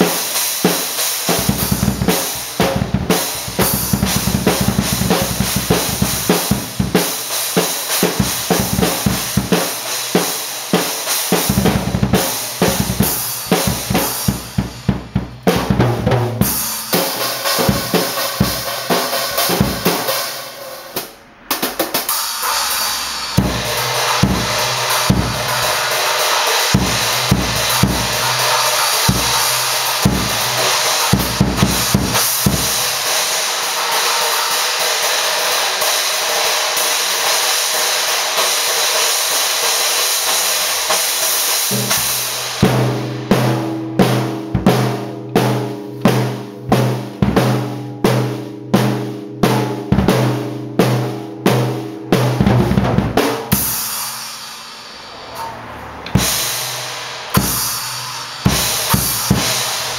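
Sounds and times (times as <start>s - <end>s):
cymbals crashing: 0.0s - 59.9s
steady drum beat: 0.0s - 59.9s
bass drum and tom hits: 1.4s - 7.0s, 11.5s - 20.2s, 41.7s - 53.7s.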